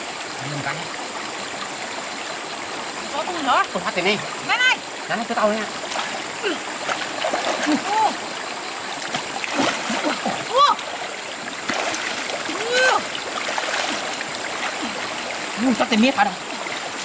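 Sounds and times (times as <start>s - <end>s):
flowing water rushing: 0.0s - 17.0s
hands splashing in water: 9.0s - 10.3s, 11.6s - 14.9s.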